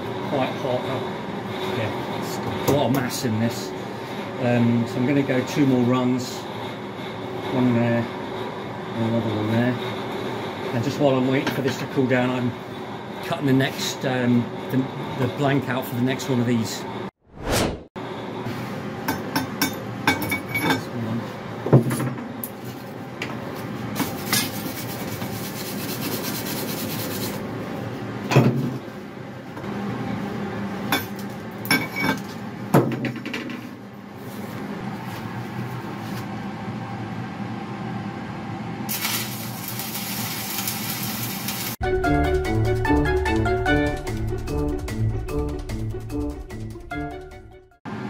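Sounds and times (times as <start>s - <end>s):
welding arc crackling: 38.9s - 41.8s.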